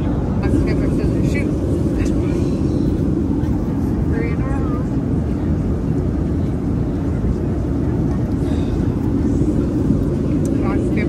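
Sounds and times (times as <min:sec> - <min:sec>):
airliner cabin jet drone: 0:00.0 - 0:11.0.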